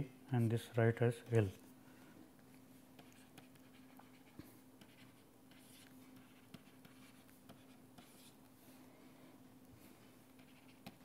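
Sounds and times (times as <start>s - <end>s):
low steady hum: 0.0s - 11.0s
handwriting scratches on tablet: 3.0s - 8.4s, 10.4s - 11.0s.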